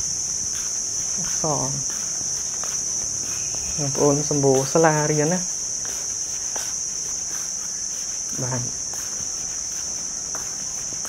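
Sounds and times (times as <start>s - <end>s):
insects chorus shrill drone: 0.0s - 11.0s.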